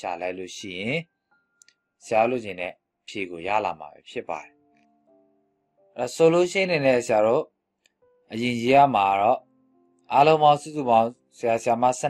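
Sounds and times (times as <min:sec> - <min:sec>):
man speaking: 0:00.0 - 0:01.0, 0:02.0 - 0:04.5, 0:06.0 - 0:07.4, 0:08.3 - 0:09.4, 0:10.1 - 0:12.0.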